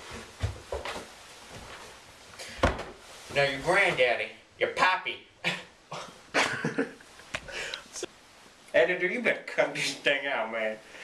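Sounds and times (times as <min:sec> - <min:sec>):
young man laughing: 0:05.5 - 0:07.6.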